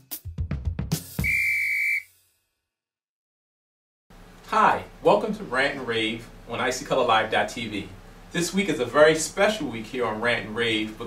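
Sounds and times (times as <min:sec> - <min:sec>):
drum-driven intro music: 0:00.0 - 0:01.5
high whistle blast: 0:01.2 - 0:02.2.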